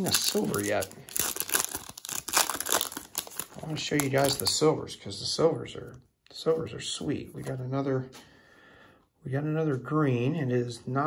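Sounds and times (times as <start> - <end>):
foil wrapper crinkling and tearing: 0.0 - 4.6.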